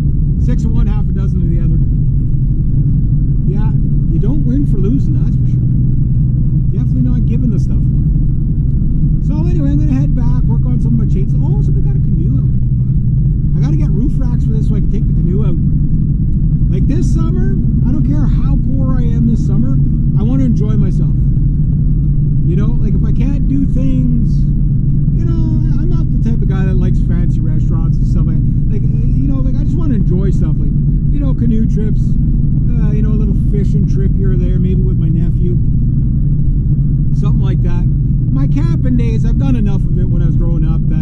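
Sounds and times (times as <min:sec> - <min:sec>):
car road and engine rumble: 0:00.0 - 0:41.0
man talking: 0:00.4 - 0:02.0, 0:03.4 - 0:05.6, 0:06.7 - 0:07.9, 0:09.2 - 0:13.0, 0:13.6 - 0:15.6, 0:16.7 - 0:21.3, 0:22.4 - 0:24.5, 0:25.1 - 0:35.6, 0:37.1 - 0:41.0.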